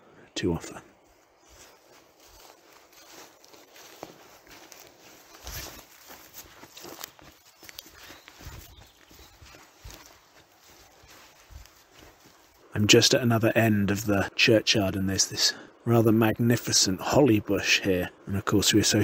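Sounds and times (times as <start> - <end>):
footsteps outdoors: 0.0 - 15.3
faint outdoor hiss: 0.0 - 19.0.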